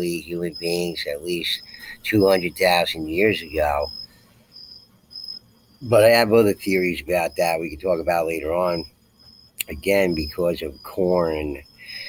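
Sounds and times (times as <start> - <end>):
person speaking: 0.0 - 3.9, 5.8 - 8.8, 9.6 - 12.0
faint high-pitched chirping: 0.0 - 12.0.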